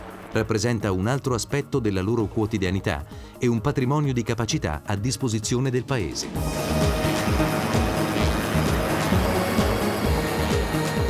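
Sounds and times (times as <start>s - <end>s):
held bass line: 0.0s - 2.4s, 4.9s - 11.0s
electronic music with kick drum: 6.2s - 11.0s.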